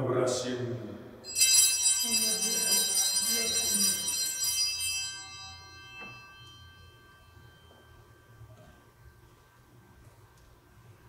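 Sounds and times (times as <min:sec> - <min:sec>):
altar bells jingling: 0:01.2 - 0:09.4.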